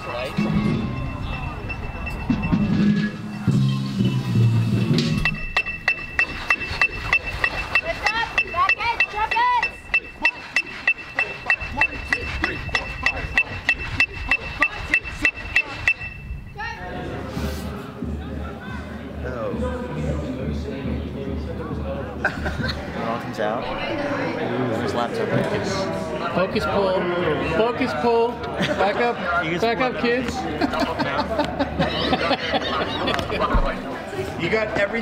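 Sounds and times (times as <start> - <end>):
steady high beep: 0.0 - 3.8, 5.1 - 16.6
electronic metronome clicking: 5.2 - 16.2
voices: 5.3 - 35.0.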